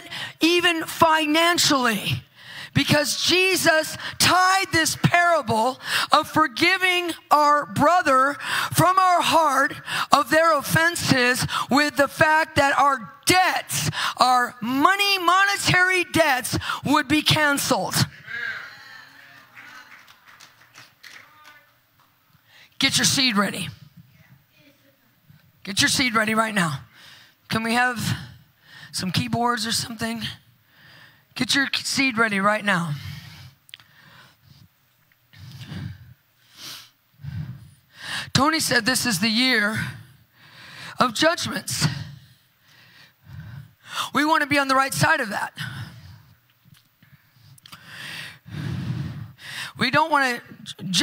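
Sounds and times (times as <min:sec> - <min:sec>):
breathing close to microphone: 0:02.3 - 0:02.8, 0:05.8 - 0:06.1, 0:35.3 - 0:38.3, 0:41.9 - 0:44.1, 0:45.6 - 0:46.4, 0:47.0 - 0:49.8.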